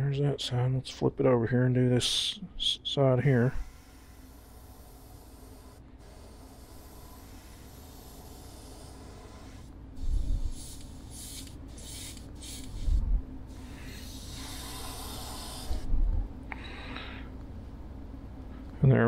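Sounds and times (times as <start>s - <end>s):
steady low hum: 0.0s - 19.0s
airbrush spraying in bursts: 3.3s - 15.9s.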